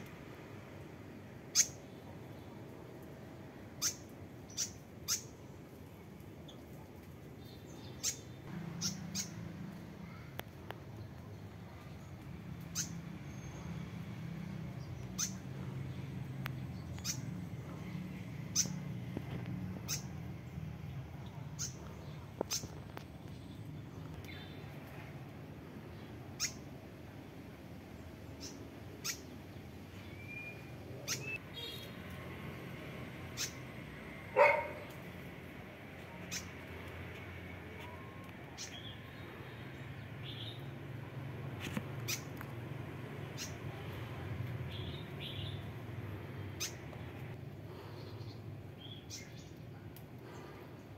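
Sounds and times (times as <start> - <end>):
bird chirps: 3.8 - 5.3, 7.4 - 10.3, 11.2 - 13.8, 14.7 - 15.5, 16.5 - 18.9, 19.8 - 20.2, 21.2 - 24.7, 26.0 - 26.7, 30.0 - 32.0.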